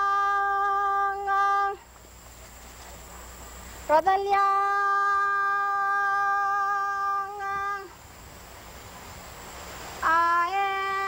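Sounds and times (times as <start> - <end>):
hiss: 0.0 - 11.0.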